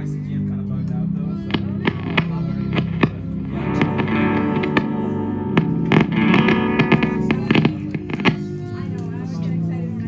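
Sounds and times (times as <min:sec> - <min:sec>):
amplified acoustic guitar: 0:01.5 - 0:09.7.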